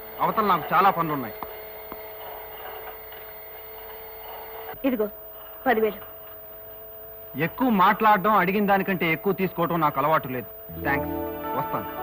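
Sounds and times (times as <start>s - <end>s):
hum of held tones: 4.6s - 12.0s.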